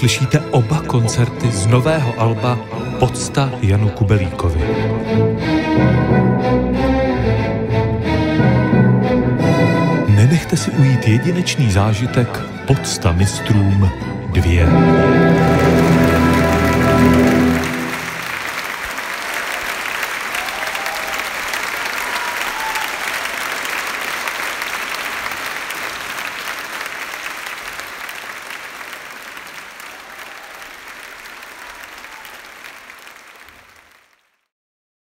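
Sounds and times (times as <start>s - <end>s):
orchestral music final chord: 0.0s - 18.5s
audience applauding: 14.4s - 34.5s.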